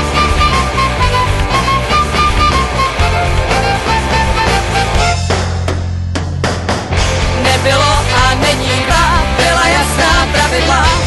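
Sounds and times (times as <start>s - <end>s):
bass line: 0.0s - 11.0s
drums: 0.0s - 11.0s
rock song with singer: 6.9s - 11.0s.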